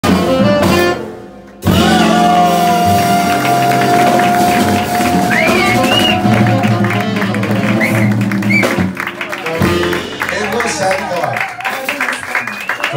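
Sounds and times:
tenor saxophone: 0.0 - 10.3
electric guitar: 1.6 - 11.1
upright bass: 1.6 - 11.3.

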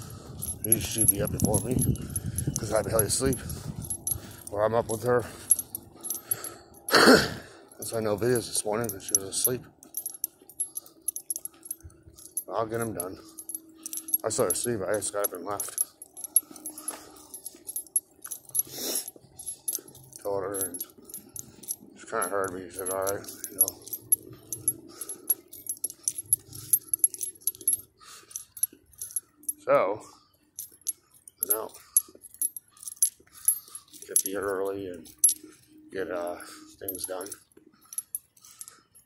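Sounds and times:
small metal pieces jingling: 0.0 - 6.9, 7.6 - 29.6, 30.2 - 35.8, 36.5 - 39.0.

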